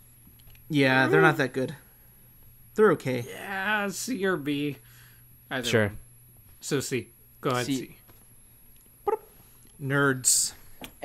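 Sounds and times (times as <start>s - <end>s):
person speaking: 0.8s - 1.5s, 7.4s - 8.0s
dog barking: 9.1s - 9.3s.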